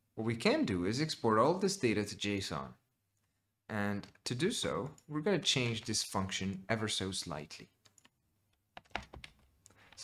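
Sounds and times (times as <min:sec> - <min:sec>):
keyboard keystrokes: 0:08.8 - 0:09.8.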